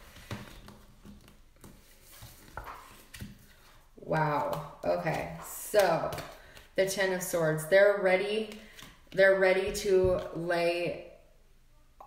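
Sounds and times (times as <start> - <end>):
cards rustling: 0.0 - 7.0, 8.4 - 9.2.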